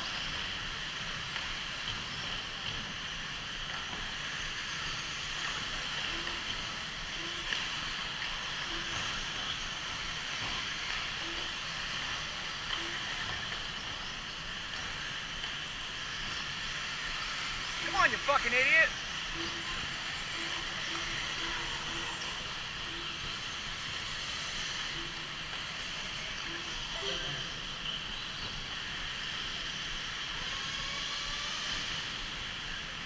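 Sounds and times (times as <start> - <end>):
rc car motors hissing: 0.0 - 33.0.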